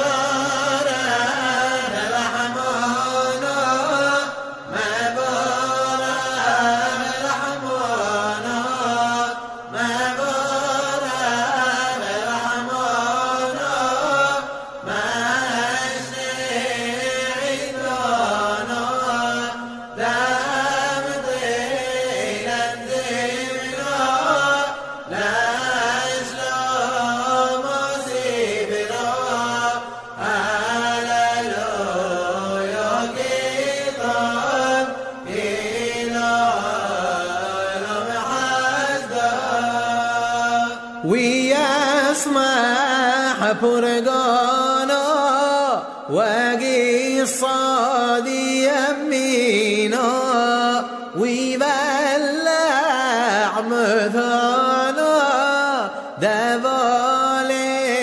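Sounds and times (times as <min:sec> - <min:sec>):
man chanting ornamented melody: 0:00.0 - 0:58.0.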